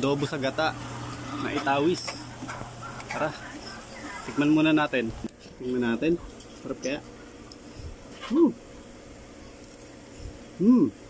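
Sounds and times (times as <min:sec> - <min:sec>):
person humming hmm: 0:10.6 - 0:11.0.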